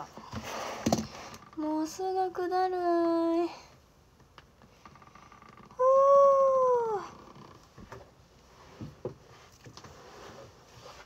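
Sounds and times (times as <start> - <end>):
woman holding long high aah: 5.8 - 7.2.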